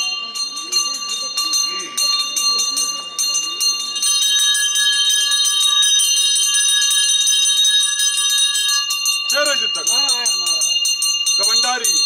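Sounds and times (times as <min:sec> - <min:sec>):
crowd murmur: 0:00.0 - 0:06.4
hand bells ringing rapidly: 0:00.0 - 0:12.0.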